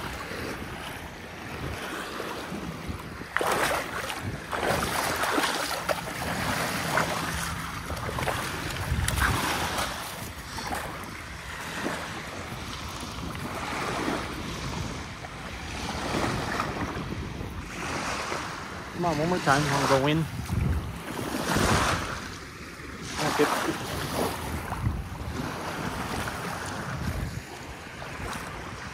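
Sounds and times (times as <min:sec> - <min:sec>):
ocean surf washing onto beach: 0:00.0 - 0:28.9
wind buffeting microphone: 0:00.0 - 0:28.9.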